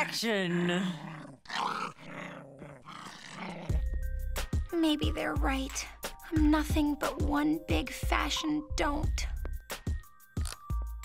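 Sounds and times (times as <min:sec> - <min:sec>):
small dog growling: 0:00.4 - 0:03.8.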